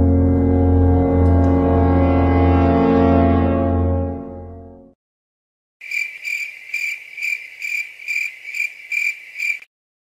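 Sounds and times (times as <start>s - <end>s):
cricket chirping: 5.8s - 9.7s.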